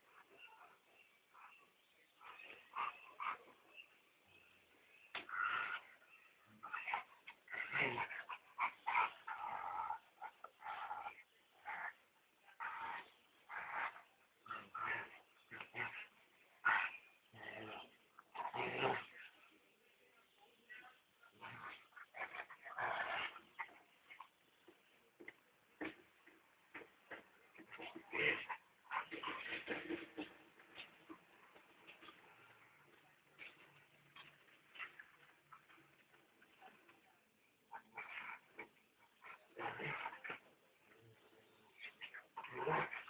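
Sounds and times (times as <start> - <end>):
dogs play-fighting noises: 0.0 - 4.0, 5.1 - 19.6, 20.7 - 43.0.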